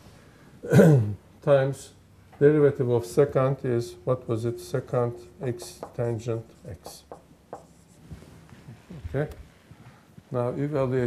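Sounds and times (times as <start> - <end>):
marker pen on whiteboard: 4.6 - 9.4.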